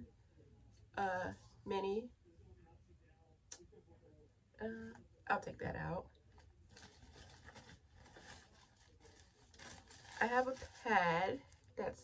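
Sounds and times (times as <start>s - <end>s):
rustling items in a purse: 6.3s - 11.8s.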